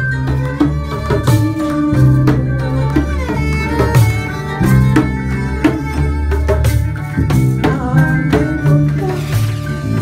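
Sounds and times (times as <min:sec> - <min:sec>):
electric bass notes: 0:00.0 - 0:10.0
hand percussion strokes: 0:00.0 - 0:10.0
plucked kora: 0:00.0 - 0:10.0
violin melody: 0:00.0 - 0:10.0.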